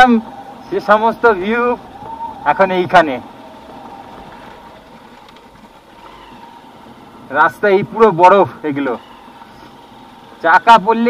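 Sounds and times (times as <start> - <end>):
man speaking: 0.0 - 1.8, 10.4 - 11.0
motorcycle engine running: 0.0 - 10.7.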